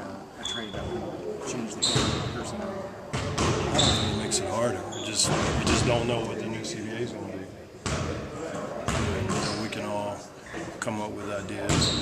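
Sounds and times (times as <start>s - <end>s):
basketballs bouncing on gym court: 8.8s - 9.6s.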